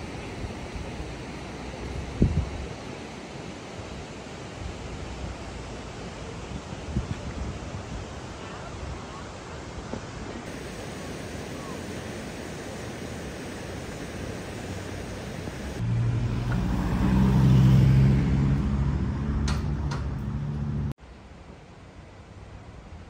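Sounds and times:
outdoor background noise: 0.0 - 23.0
vehicle engine hum: 14.5 - 21.0.

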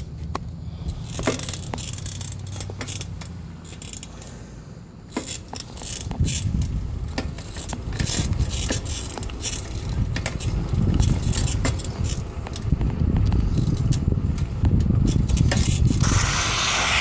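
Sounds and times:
bicycle drivetrain clicks and rattles: 0.0 - 4.5, 5.1 - 17.0
wind and tyre rumble: 0.0 - 17.0.

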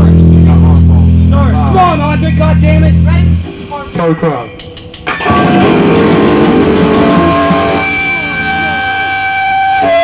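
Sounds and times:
rock music with guitar: 0.0 - 10.0.

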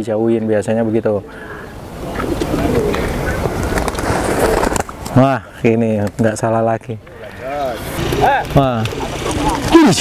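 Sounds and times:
background rush: 0.0 - 10.0
pigeons cooing: 1.2 - 4.8, 8.0 - 10.0.

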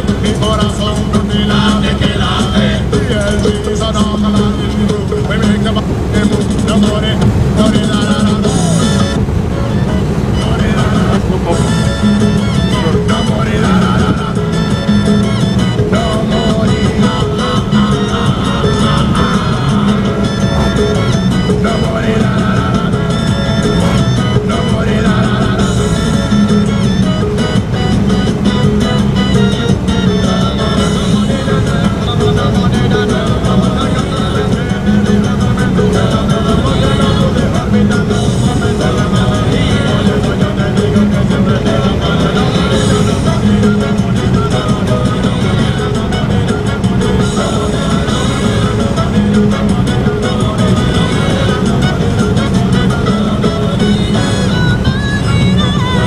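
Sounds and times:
car road and engine hum: 0.0 - 56.0
music with singing on car radio: 0.0 - 56.0.

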